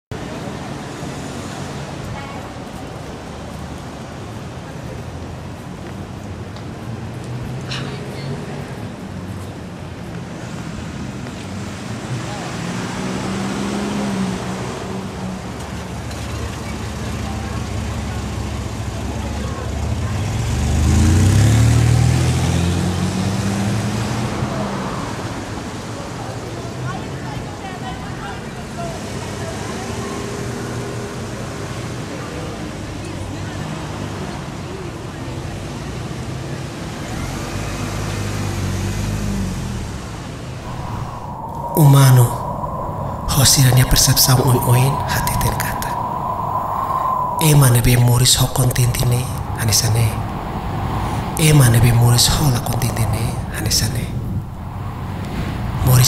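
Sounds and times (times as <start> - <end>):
road traffic hum: 0.2 - 26.6, 33.3 - 56.0
indistinct voices: 40.6 - 56.0.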